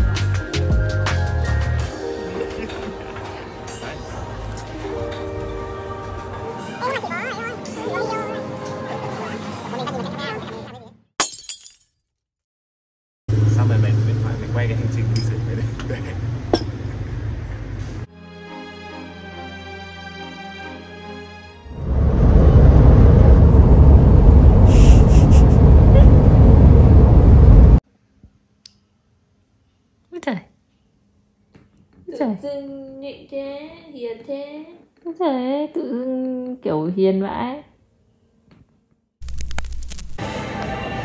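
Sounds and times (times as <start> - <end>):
background music: 0.0 - 10.0, 18.1 - 21.8
glass shattering: 11.2 - 12.0
road noise inside car cabin: 25.5 - 27.8.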